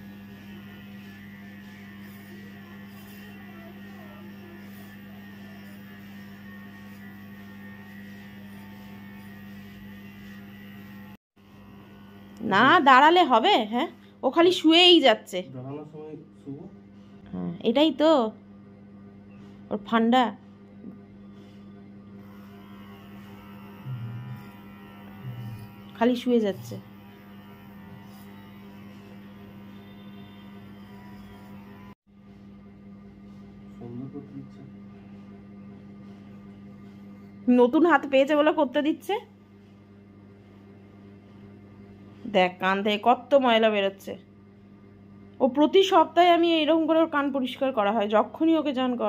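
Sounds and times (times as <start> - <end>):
electric pet clipper humming: 0.0 - 16.2, 22.2 - 32.0.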